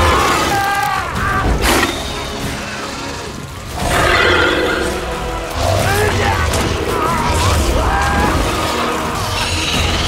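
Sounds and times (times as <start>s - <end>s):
film score music: 0.0s - 10.0s
shrill creature-like screech: 3.8s - 5.1s.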